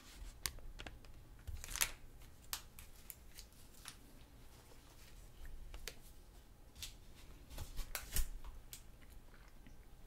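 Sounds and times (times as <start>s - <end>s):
paper crackling: 0.0s - 8.5s.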